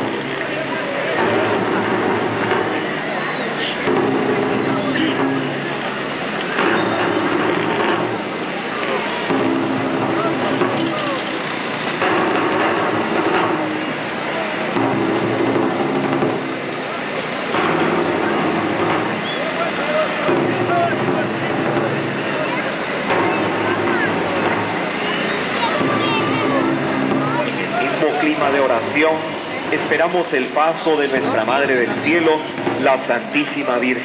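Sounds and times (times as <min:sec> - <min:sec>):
band playing slow held chords: 0:00.0 - 0:34.0
crowd chatter: 0:00.0 - 0:34.0.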